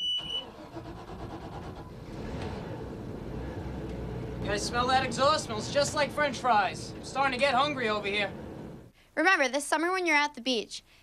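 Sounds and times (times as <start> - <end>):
diesel engine starting and running: 0.0 - 8.9.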